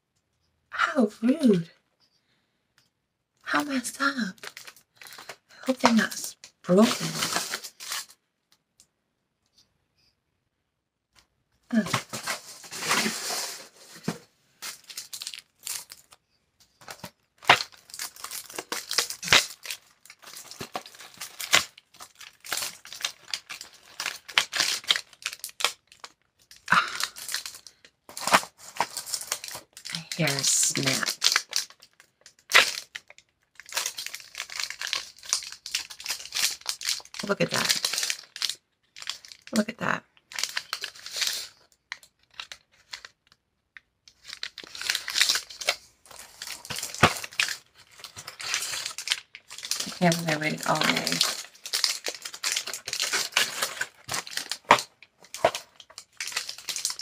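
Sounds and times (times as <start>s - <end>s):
plastic packaging crinkling and tearing: 3.6s - 8.2s, 11.7s - 43.4s, 44.1s - 57.0s.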